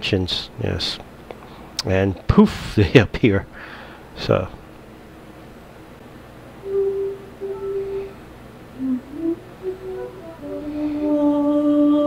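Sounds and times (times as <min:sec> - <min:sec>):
person humming a slow tune: 0:06.6 - 0:12.0.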